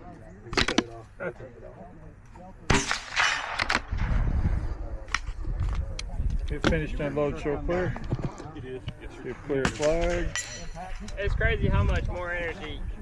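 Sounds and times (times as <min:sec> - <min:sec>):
loud rifle shot: 0:02.7 - 0:04.2.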